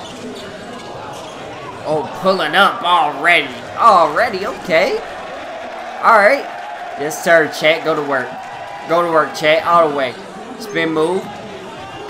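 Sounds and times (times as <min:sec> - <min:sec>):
crowd noise in large hall: 0:00.0 - 0:12.0.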